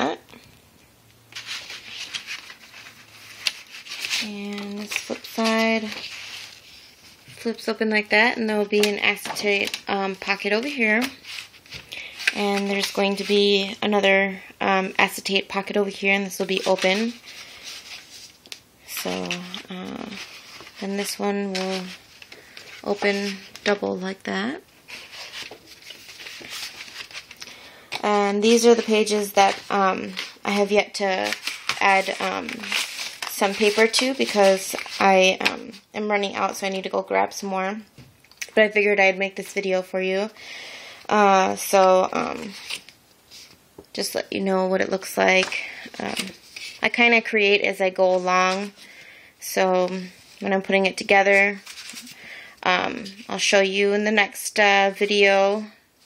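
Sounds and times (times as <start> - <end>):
paper rubbing and sliding: 1.3 - 7.2, 19.1 - 23.8, 24.9 - 27.4, 28.5 - 35.4.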